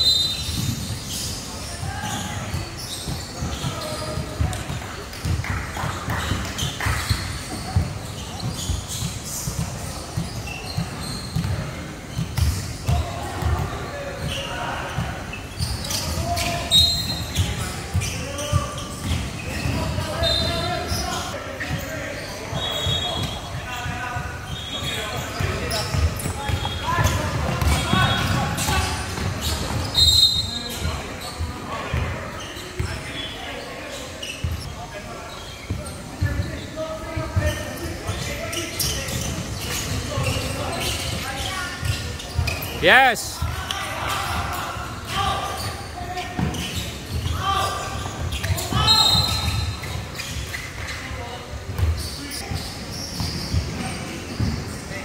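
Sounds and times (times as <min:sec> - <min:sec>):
people shouting and chattering: 0:00.0 - 0:55.0
sneaker squeaks: 0:00.0 - 0:55.0.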